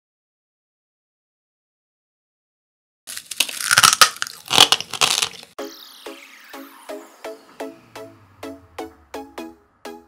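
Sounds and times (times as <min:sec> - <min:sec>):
candy crunching being chewed: 0:03.1 - 0:05.5
music: 0:05.6 - 0:10.0.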